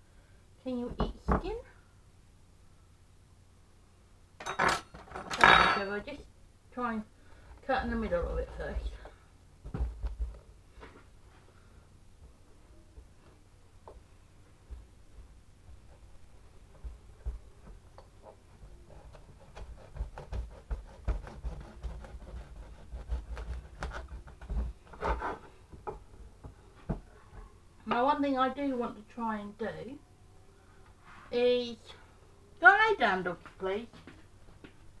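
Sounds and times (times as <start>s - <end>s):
knife cutting marrow on board: 19.0s - 25.5s.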